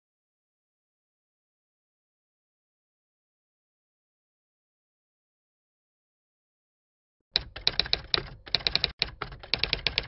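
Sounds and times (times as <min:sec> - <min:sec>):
keyboard key clicks: 0:07.4 - 0:10.0.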